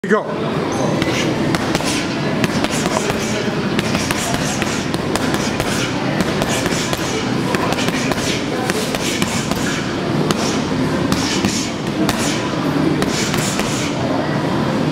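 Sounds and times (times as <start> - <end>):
voices: 0.3 - 14.9
gym noise: 0.6 - 14.2
gloves punching heavy bag: 1.0 - 14.0.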